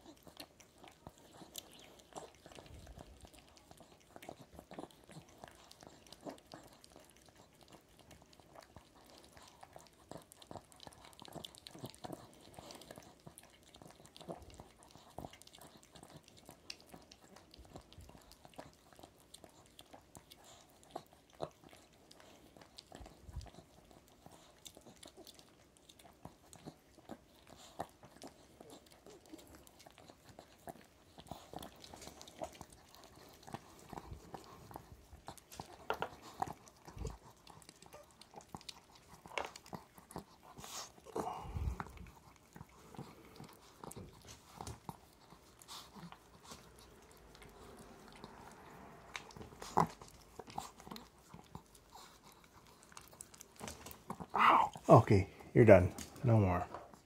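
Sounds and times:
dog licking face: 0:00.0 - 0:57.0.

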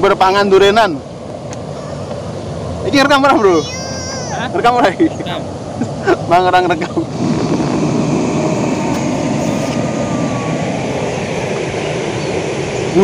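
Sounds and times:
river rushing: 0:00.0 - 0:13.0.

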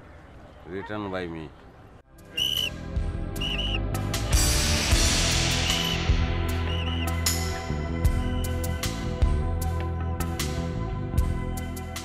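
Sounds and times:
short high whistle-like notes: 0:02.3 - 0:02.8, 0:03.4 - 0:03.8, 0:05.3 - 0:07.5, 0:08.2 - 0:08.7.

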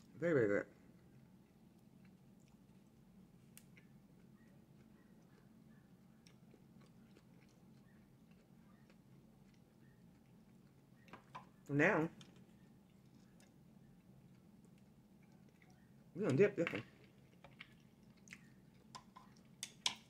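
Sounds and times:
low steady hum: 0:00.0 - 0:20.0
chewing food: 0:00.7 - 0:20.0.

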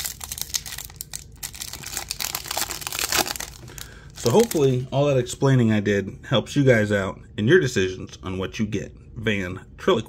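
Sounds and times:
foil wrapper tearing and crinkling: 0:00.0 - 0:04.9.

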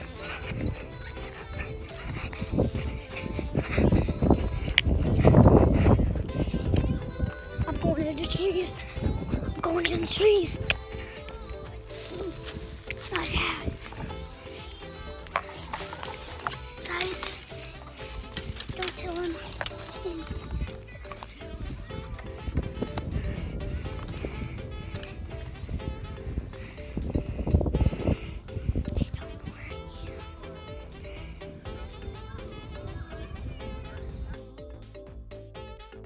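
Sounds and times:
background music with held notes: 0:00.0 - 0:36.0
camera rustling through branches: 0:11.8 - 0:23.2.

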